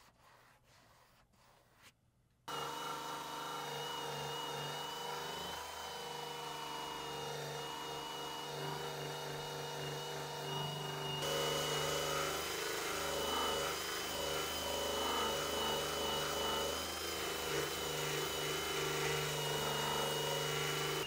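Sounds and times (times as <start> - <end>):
cordless drill motor whine: 2.5 - 21.0.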